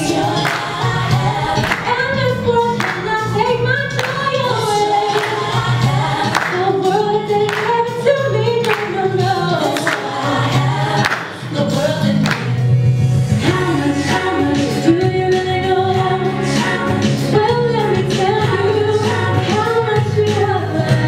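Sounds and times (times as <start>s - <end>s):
woman singing gospel: 0.0s - 12.3s, 13.4s - 21.0s
bass and percussion accompaniment: 0.0s - 21.0s.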